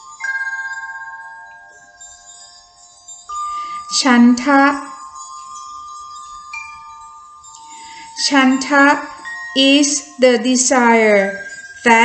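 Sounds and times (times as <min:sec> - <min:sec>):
ringing chime tones music: 0:00.0 - 0:12.0.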